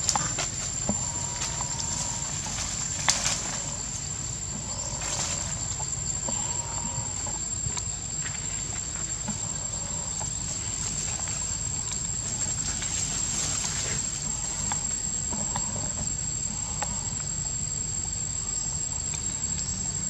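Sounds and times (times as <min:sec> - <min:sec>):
rustling of branches: 0:00.0 - 0:16.7
high-pitched insect drone: 0:00.0 - 0:20.0.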